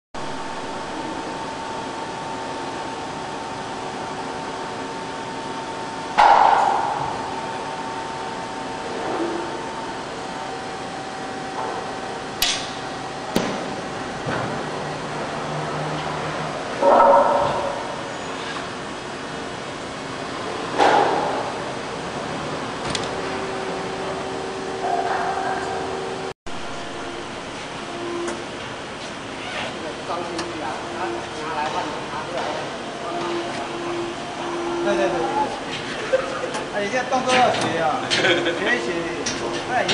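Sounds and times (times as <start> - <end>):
machine humming and whining: 0.2 - 39.9
loud machine knocks: 6.2 - 7.4, 12.4 - 14.7.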